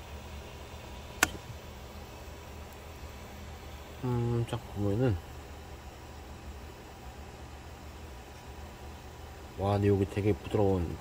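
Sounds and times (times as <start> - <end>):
low room hum and hiss: 0.0 - 11.0.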